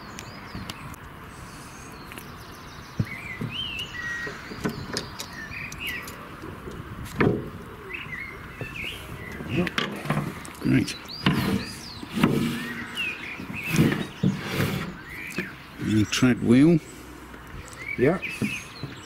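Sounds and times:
songbird warbling: 1.9s - 6.2s, 10.7s - 19.0s.

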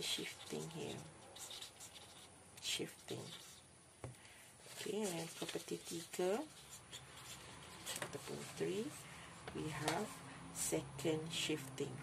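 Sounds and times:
marker pen writing on paper: 0.0s - 2.3s.

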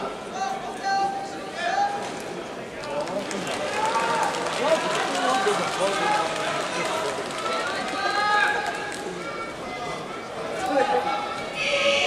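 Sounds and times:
men shouting in a large hall: 10.9s - 12.0s.

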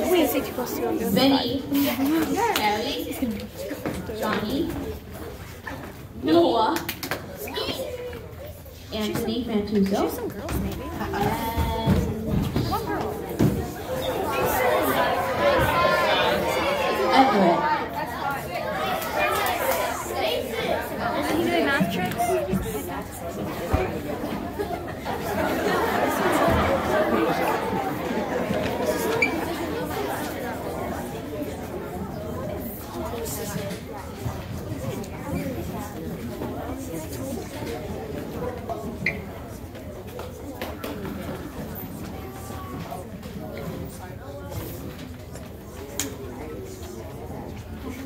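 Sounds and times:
children chattering and calling out: 0.0s - 48.0s.

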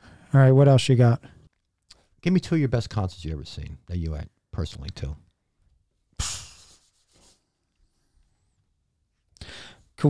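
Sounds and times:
short breath in: 9.4s - 9.9s.

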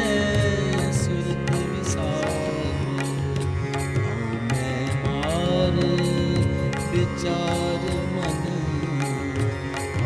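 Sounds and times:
harmonium chords: 0.0s - 10.0s
tabla beat: 0.0s - 10.0s.

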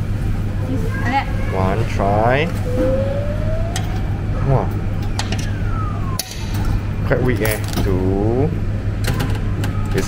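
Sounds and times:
steady low hum: 1.4s - 9.0s
rising thin tone: 2.4s - 6.2s
tone sliding down: 2.4s - 6.5s.

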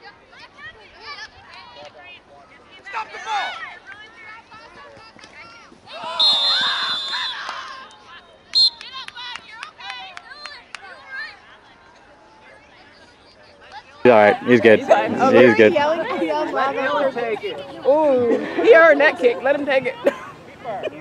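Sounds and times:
distant shouts and chatter: 0.0s - 21.0s
referee whistle blasts: 6.0s - 9.0s.

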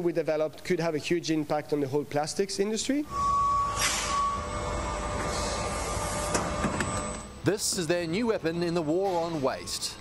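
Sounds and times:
machine hum and whir: 2.8s - 10.0s.

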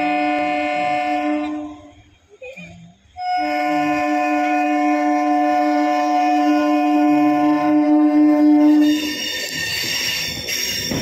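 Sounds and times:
train horn blast: 0.0s - 2.0s, 3.2s - 9.0s.

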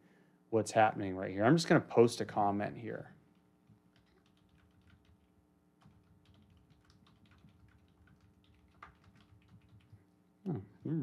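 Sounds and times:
faint steady hum: 0.0s - 11.0s
typing on computer keyboard: 3.9s - 10.1s.

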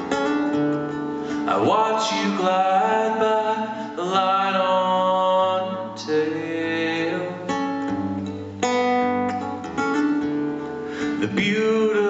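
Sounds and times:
acoustic guitar chords: 0.0s - 12.0s
person singing: 1.3s - 7.6s, 11.1s - 12.0s.

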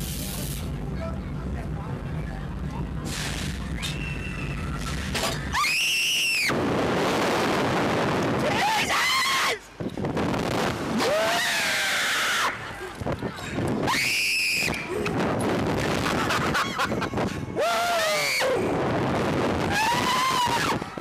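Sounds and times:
low rumble: 0.0s - 5.6s
wind rushing over microphone: 6.4s - 9.1s, 9.7s - 11.9s, 12.5s - 21.0s.

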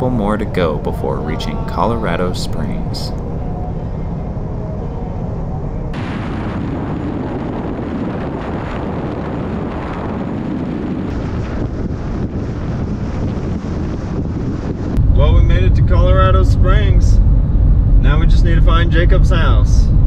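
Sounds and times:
wind rushing over microphone: 0.0s - 20.0s.

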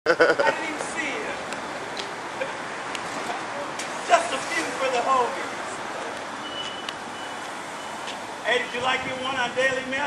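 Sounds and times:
street noise: 0.0s - 10.0s
vehicle warning beeps: 6.4s - 8.2s.

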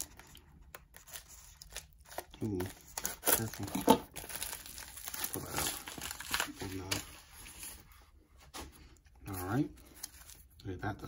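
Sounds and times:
envelope crinkling and rustling: 0.0s - 10.6s.

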